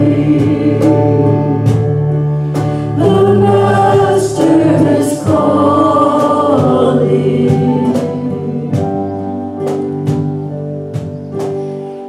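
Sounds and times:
voices singing a hymn: 0.0 - 10.4
electric keyboard: 0.0 - 12.0
steady beat: 3.0 - 11.8.

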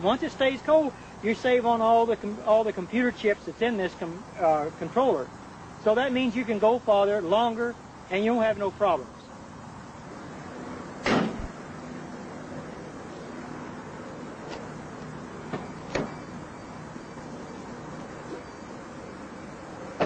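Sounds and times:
outdoor background noise: 0.0 - 20.0
loud thump: 11.0 - 11.6.

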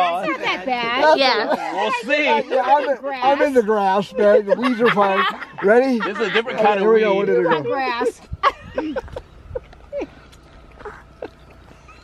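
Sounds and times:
low background rumble: 7.5 - 12.0.

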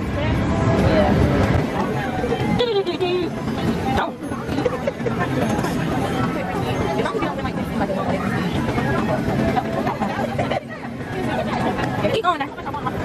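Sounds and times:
many voices chattering: 0.0 - 13.0.

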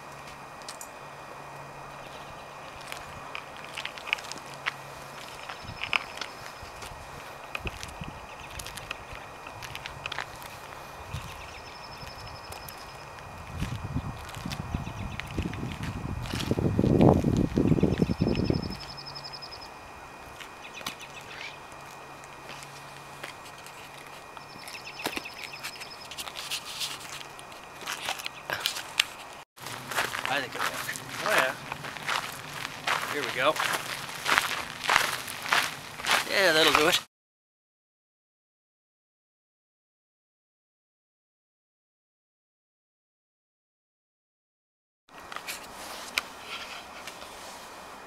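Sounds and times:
footsteps on pavement: 2.1 - 18.4, 20.3 - 37.0.

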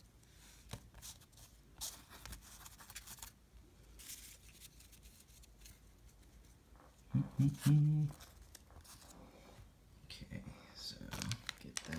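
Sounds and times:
cards rustling and sliding: 0.2 - 9.4.

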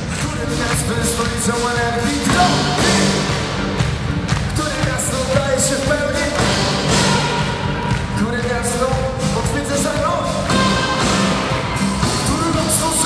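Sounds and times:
man singing: 0.0 - 3.7, 4.4 - 11.3, 12.0 - 13.0
drums with cymbals: 0.0 - 13.0
live band music: 0.0 - 13.0.

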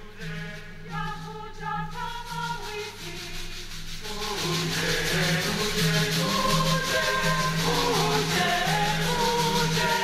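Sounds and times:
choir singing slowly: 0.0 - 10.0
faint rhythmic rustle: 0.0 - 10.0.

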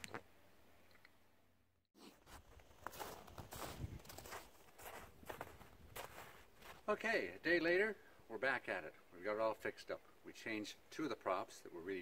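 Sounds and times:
footsteps on snow: 2.0 - 7.1.

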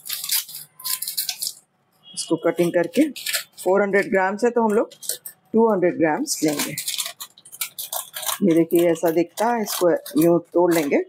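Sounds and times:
scissors snipping plastic: 0.0 - 1.6, 2.6 - 5.4, 6.2 - 11.0
plastic packet crinkling: 0.0 - 11.0.

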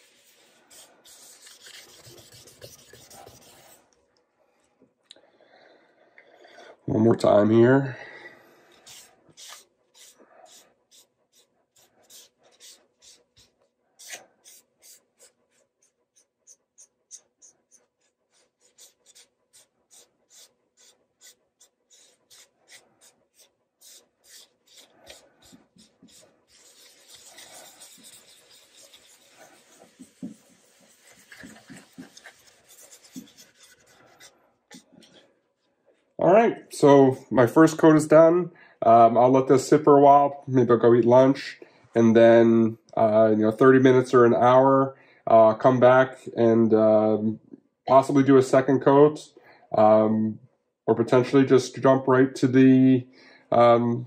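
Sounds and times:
towel rubbing on wood: 0.0 - 3.8, 16.2 - 34.9.

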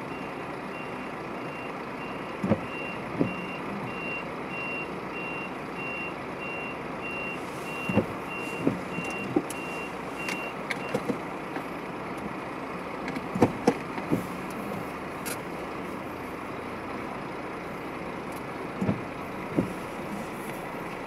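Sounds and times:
road and vehicle noise: 0.0 - 21.0
vehicle warning beeper: 0.1 - 11.1.

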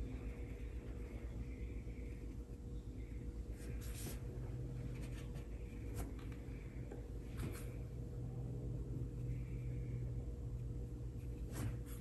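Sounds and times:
steady low hum: 0.0 - 12.0
paintbrush swishing on paper: 3.6 - 4.4.

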